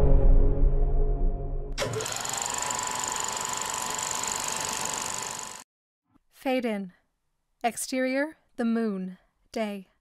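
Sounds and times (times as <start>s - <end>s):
film projector clattering: 1.8s - 5.6s.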